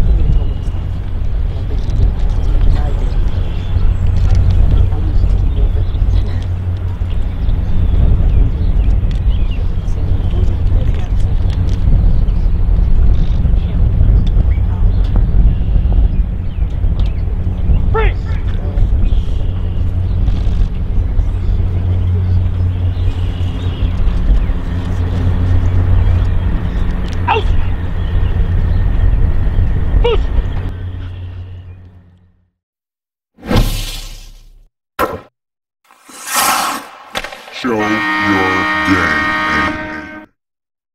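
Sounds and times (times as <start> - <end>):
wind buffeting microphone: 0.0 - 31.8
person shouting commands: 17.9 - 18.5, 37.6 - 39.9.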